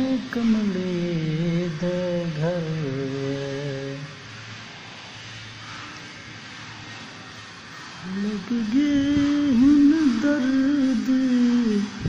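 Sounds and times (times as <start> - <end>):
hiss: 0.0 - 12.0
low steady drone: 0.0 - 12.0
person singing: 8.0 - 12.0.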